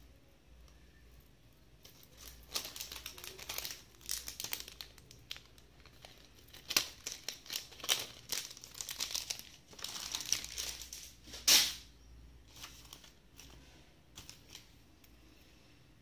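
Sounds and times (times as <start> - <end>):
wrapping crinkling and rustling: 1.8 - 15.2.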